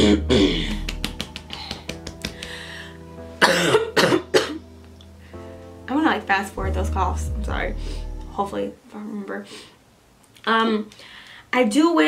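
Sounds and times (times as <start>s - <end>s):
soft background music: 0.0s - 9.6s
woman coughing: 3.4s - 4.6s.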